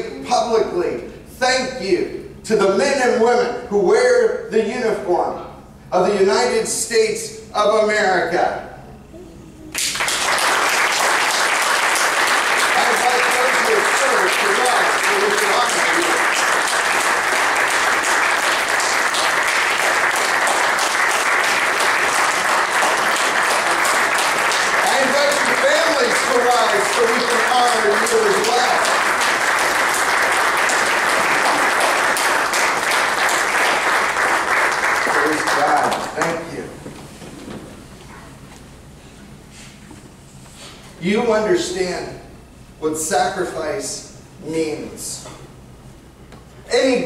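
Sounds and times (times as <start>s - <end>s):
congregation applauding: 9.7s - 36.7s.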